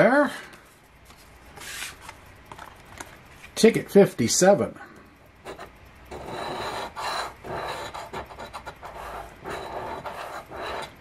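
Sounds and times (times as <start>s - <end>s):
coin scraping scratch ticket: 5.4s - 11.0s.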